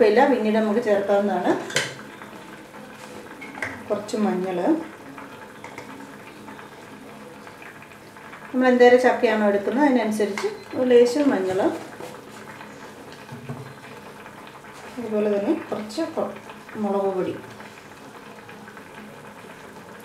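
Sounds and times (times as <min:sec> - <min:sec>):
water bubbling in a pot: 0:00.0 - 0:20.0.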